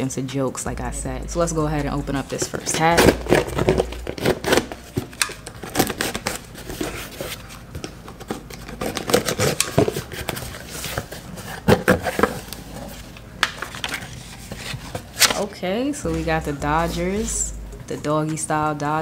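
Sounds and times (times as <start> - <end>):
box cutter slicing packing tape: 2.8 - 7.6, 8.2 - 12.6.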